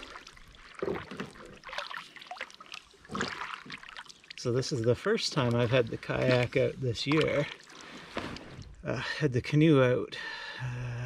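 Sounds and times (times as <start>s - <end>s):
paddle splashing in water: 0.0s - 8.8s
water dripping from paddle: 0.0s - 8.8s.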